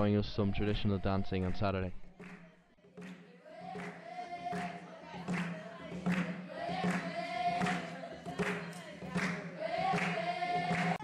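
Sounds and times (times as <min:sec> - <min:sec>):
girls singing together: 0:02.2 - 0:11.0
sharp beat: 0:02.2 - 0:11.0.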